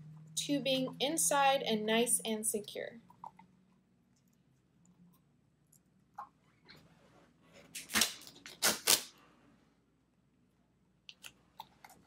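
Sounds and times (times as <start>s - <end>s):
duct tape ripping off: 7.7s - 9.2s.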